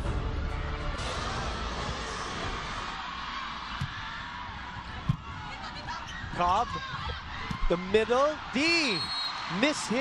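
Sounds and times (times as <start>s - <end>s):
arena crowd noise: 0.1s - 10.0s.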